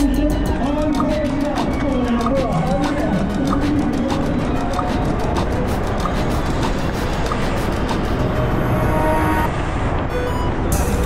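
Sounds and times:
background music: 0.0 - 11.0
bicycle road noise: 0.5 - 11.0
wind rush: 1.2 - 11.0.

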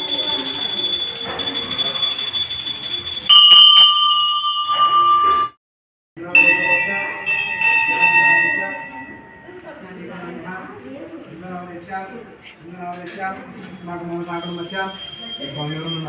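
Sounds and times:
lower-pitched bell ringing: 0.0 - 5.6, 6.2 - 10.3, 14.2 - 16.0
temple bells clanging: 0.0 - 5.6, 6.2 - 10.0.

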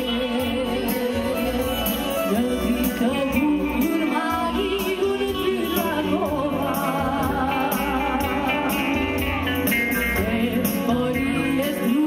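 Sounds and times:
electric guitar: 0.0 - 12.0
keyboard: 0.0 - 12.0
woman singing into a microphone: 0.0 - 12.0.

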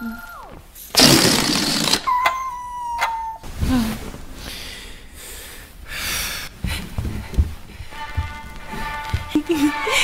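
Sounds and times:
balloon deflating: 0.8 - 2.2.

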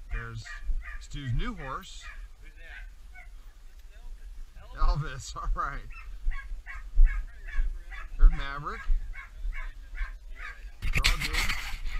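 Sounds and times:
wind rumble on microphone: 0.0 - 11.9.

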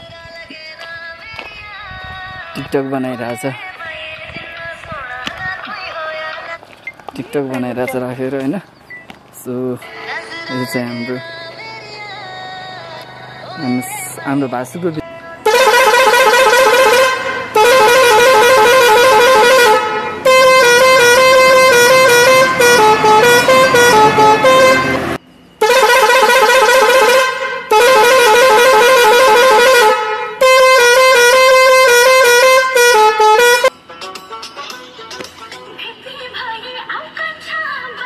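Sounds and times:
musical bus horn playing a tune: 15.4 - 33.8.

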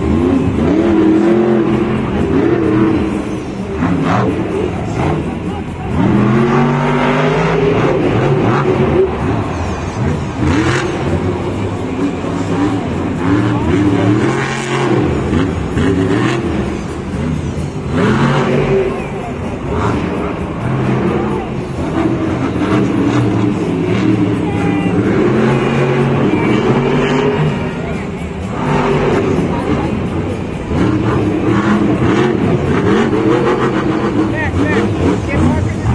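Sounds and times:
monster truck engine revving: 0.0 - 35.9.

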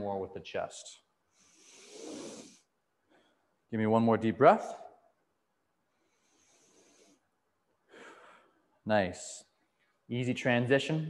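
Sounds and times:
man breathing deeply: 1.3 - 3.5, 6.0 - 8.6.

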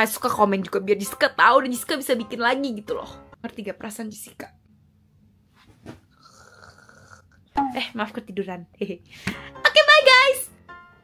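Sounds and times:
mock snore: 6.1 - 7.4.

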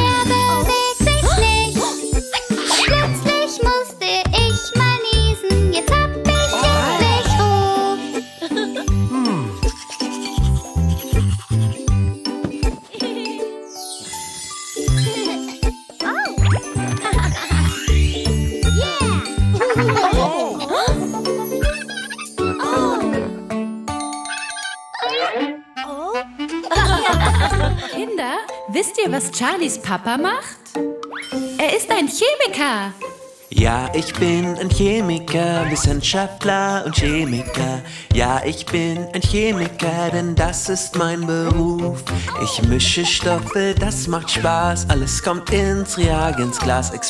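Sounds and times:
bell-like children's music melody: 0.0 - 29.9, 30.7 - 47.0
cartoon vocal pitch slide: 6.4 - 8.0, 35.5 - 35.9, 42.3 - 47.0
steady bass beat: 42.6 - 46.8.

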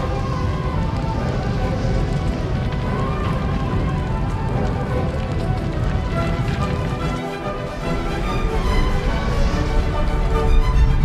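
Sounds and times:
film score music: 0.0 - 11.0
low rumble of fire: 0.0 - 11.0.

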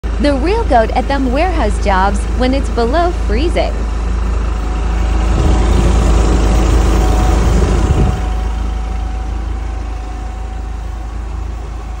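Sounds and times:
forklift engine idling: 0.0 - 12.0
faint constant whine: 0.1 - 12.0.

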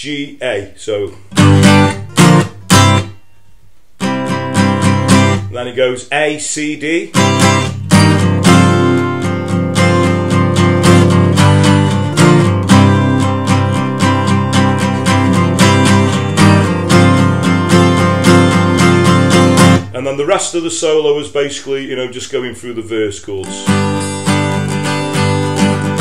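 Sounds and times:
acoustic guitar strummed: 1.1 - 5.9, 6.9 - 20.9, 22.9 - 26.0.

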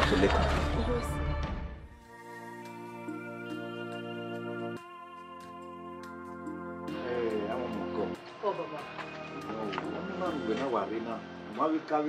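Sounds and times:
sustained chords music: 0.2 - 12.0.

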